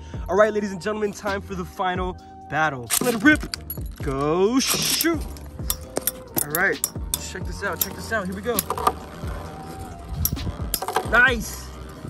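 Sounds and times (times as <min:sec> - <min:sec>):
metallic clicks of tops colliding: 0:04.6 - 0:09.0, 0:10.2 - 0:11.3.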